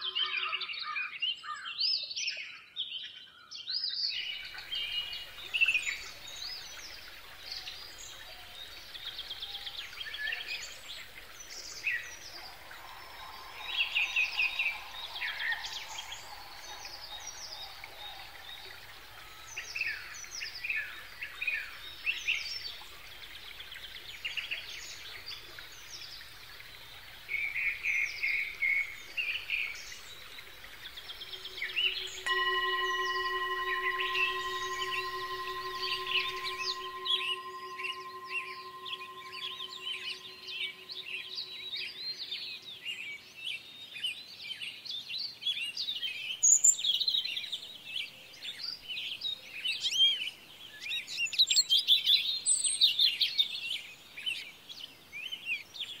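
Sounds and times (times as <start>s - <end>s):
singing bowl ringing: 4.4s - 42.6s.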